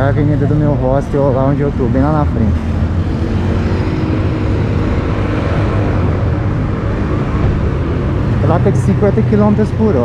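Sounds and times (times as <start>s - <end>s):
car engines passing: 0.0s - 10.0s
tyres passing on road: 0.0s - 10.0s.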